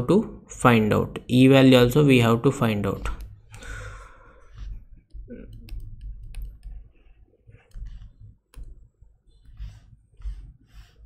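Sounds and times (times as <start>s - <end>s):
computer mouse clicks: 4.5s - 11.0s.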